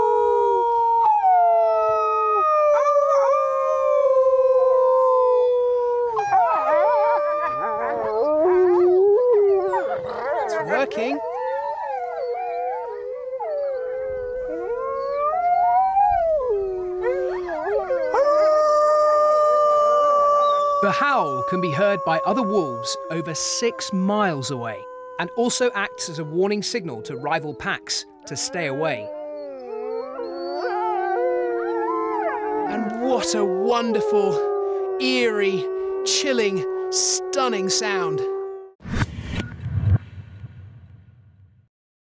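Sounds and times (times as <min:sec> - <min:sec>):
man imitating a howl: 0:00.0 - 0:38.7
wolves howling in chorus: 0:00.0 - 0:38.7.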